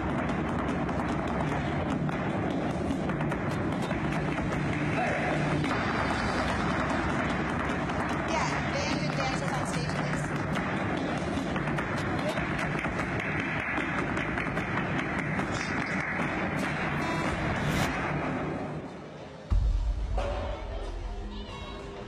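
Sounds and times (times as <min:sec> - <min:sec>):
music: 0:00.0 - 0:22.0.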